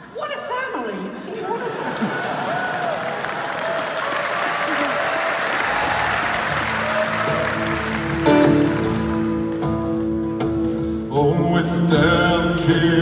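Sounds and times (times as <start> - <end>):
audience applauding: 1.7 - 10.0.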